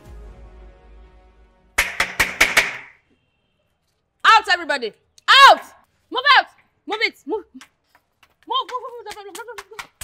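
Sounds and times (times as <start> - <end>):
wooden canes cracking on hard surface: 1.8 - 3.0, 7.6 - 10.0.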